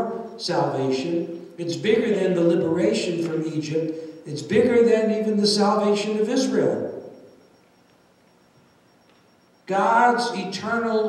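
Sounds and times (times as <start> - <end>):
man's voice through a microphone: 0.0 - 7.0, 9.7 - 11.0.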